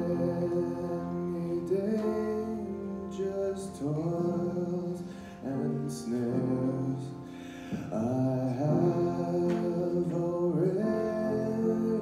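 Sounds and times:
young man singing: 0.0 - 12.0.

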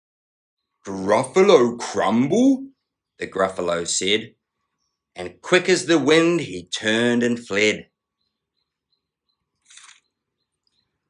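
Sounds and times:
page turning swish: 9.7 - 10.0.

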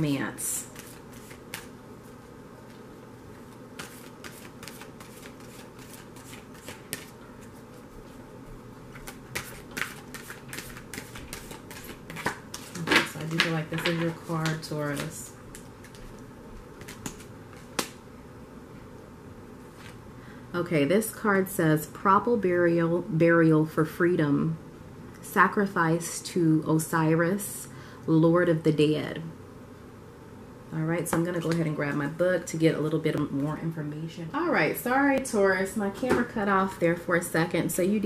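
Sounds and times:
cards being shuffled: 0.6 - 1.8, 2.7 - 8.2, 8.9 - 16.2, 16.8 - 18.0.

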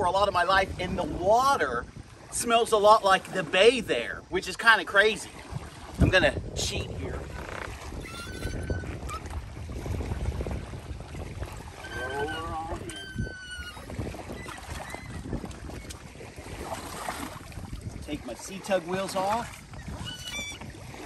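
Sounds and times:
wind on microphone: 0.0 - 21.0
short high calls: 8.0 - 9.2, 11.8 - 13.9.

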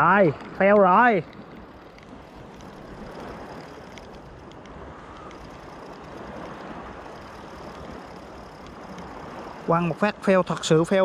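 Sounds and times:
wind on microphone: 0.0 - 10.3
fishing reel ticking: 0.0 - 11.0
shallow water: 0.0 - 11.0.

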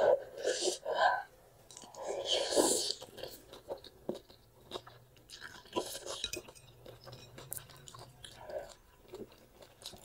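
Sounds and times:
person slurping noodles: 0.0 - 1.0, 1.9 - 3.3
chewing with wet clicks: 1.7 - 2.3, 2.9 - 10.0.

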